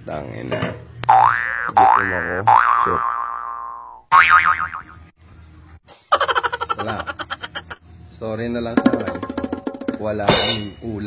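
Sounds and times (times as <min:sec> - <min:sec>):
cartoon boing sound effect: 0:01.1 - 0:05.0.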